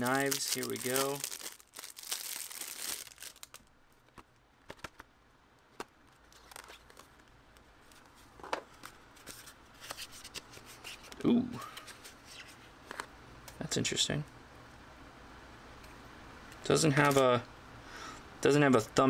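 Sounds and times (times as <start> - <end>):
plastic wrap crinkling and tearing: 0.0 - 3.7.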